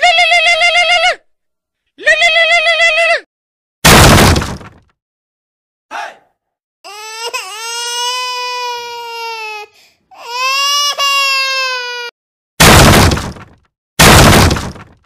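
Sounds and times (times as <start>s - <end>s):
cracking breaking sound effects: 3.9s - 4.9s, 12.6s - 15.0s.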